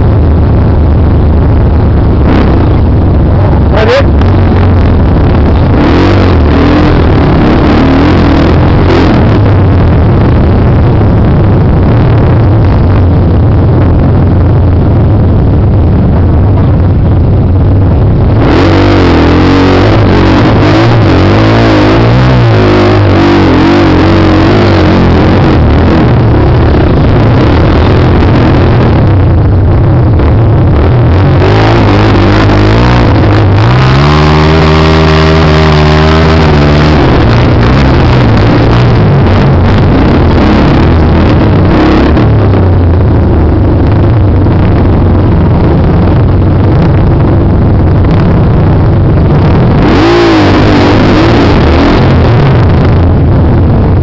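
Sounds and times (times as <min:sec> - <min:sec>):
dirt bike engine revving: 0:02.1 - 0:10.6, 0:18.3 - 0:29.1, 0:30.8 - 0:42.7, 0:49.4 - 0:52.9.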